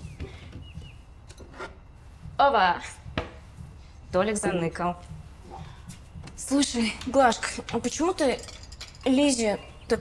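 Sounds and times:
low steady background hum: 0:00.0 - 0:10.0.

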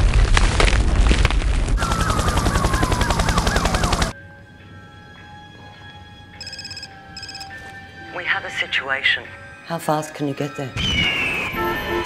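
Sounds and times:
ground cracking open rumble: 0:00.0 - 0:02.5
telephone bell ringing: 0:06.4 - 0:07.7.

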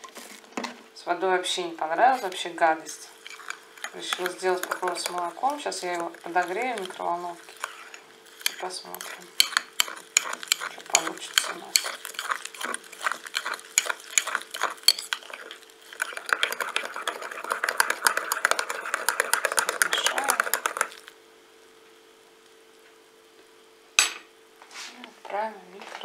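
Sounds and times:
spoon swirling and scraping: 0:01.8 - 0:21.1.

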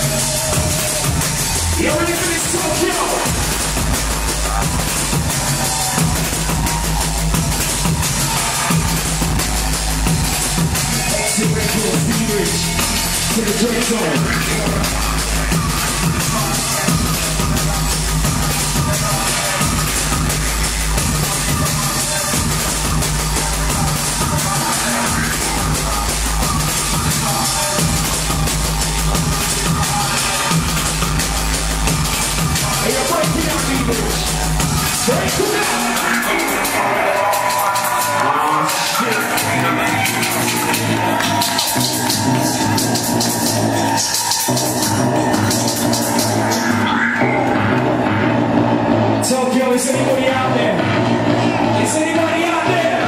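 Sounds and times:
fast hi-hat rhythm: 0:00.0 - 0:47.7
drum and bass music: 0:00.0 - 0:53.0
repeating low bassline: 0:00.0 - 0:53.0.

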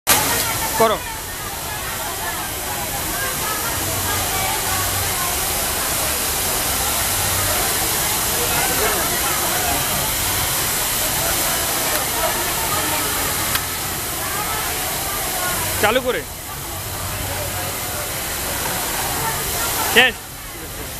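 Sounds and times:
factory floor hiss: 0:00.1 - 0:20.9.

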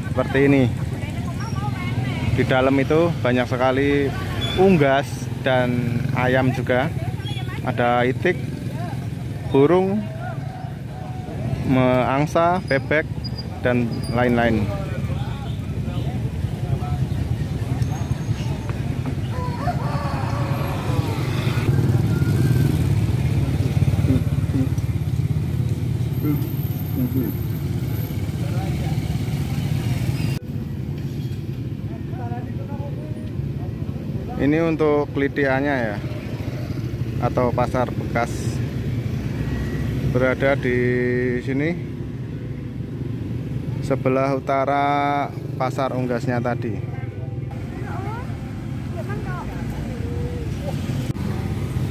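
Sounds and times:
motorcycle engines riding past: 0:00.0 - 0:51.9
people talking: 0:26.2 - 0:27.4, 0:47.5 - 0:50.8.

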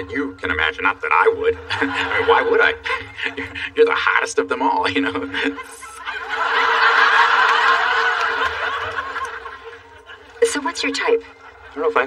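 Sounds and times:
studio audience laughing: 0:01.6 - 0:03.8, 0:05.0 - 0:12.0.

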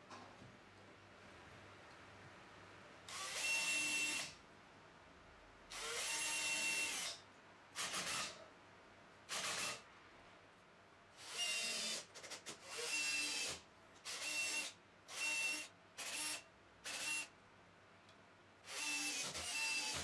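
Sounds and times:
electric drill whining: 0:03.1 - 0:04.3, 0:18.7 - 0:20.0.

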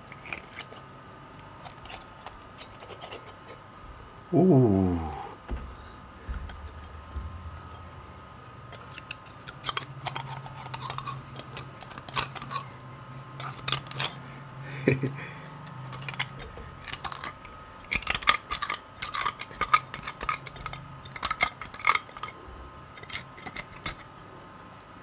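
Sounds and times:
knife scraping inside a bone: 0:01.6 - 0:03.6, 0:08.7 - 0:12.8, 0:13.4 - 0:14.2.

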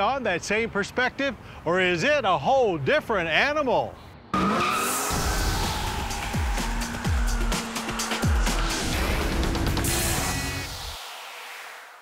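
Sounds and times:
car rushing past: 0:04.3 - 0:10.7
tire squeal: 0:04.4 - 0:10.6.

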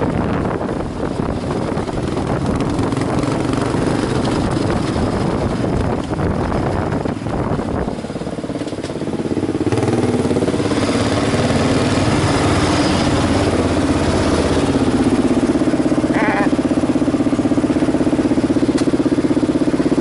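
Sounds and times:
motorcycle engine at low revs: 0:00.0 - 0:20.0.

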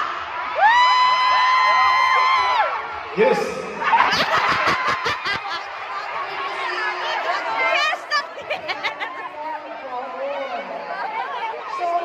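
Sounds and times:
audience laughing: 0:03.6 - 0:06.1, 0:07.4 - 0:09.6.

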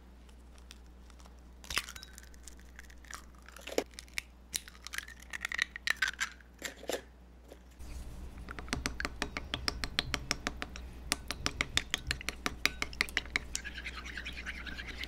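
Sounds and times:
eggshells knocking on bowl rim: 0:08.4 - 0:15.0
utensil tapping bowl: 0:08.4 - 0:15.0.

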